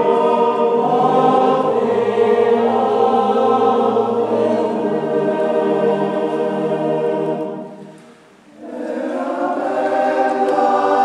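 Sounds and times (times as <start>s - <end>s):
male choir singing a cappella: 0.0s - 11.0s.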